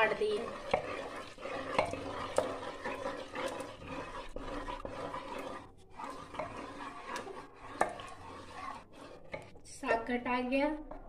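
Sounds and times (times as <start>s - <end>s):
masher squelching greens: 0.0s - 9.6s.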